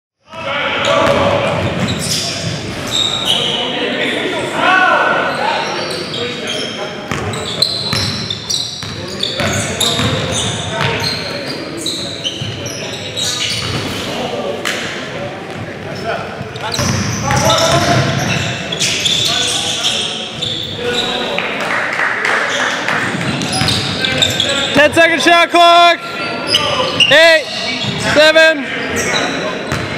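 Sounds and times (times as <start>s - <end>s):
players' voices: 0.2s - 29.9s.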